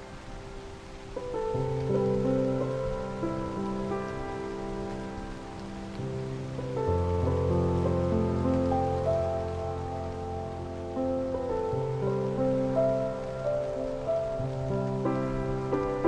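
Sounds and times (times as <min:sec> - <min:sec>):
rain: 0:00.0 - 0:16.0
slow piano chords: 0:00.0 - 0:16.0.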